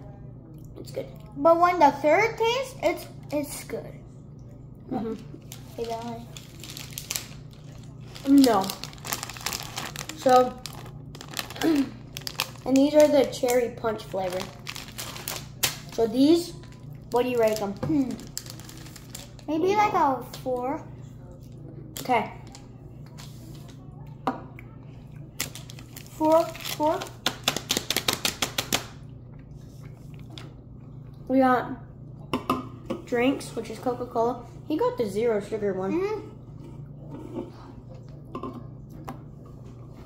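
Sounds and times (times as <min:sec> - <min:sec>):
plastic bag crinkling: 0:05.1 - 0:19.6, 0:25.4 - 0:28.6.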